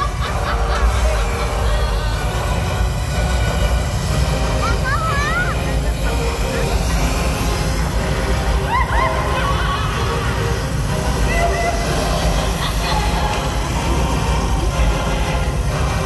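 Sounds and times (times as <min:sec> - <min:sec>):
flame effects rumbling: 0:00.0 - 0:16.0.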